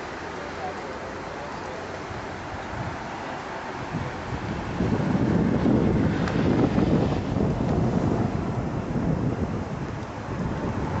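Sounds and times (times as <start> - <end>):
wind buffeting microphone: 2.0 - 11.0.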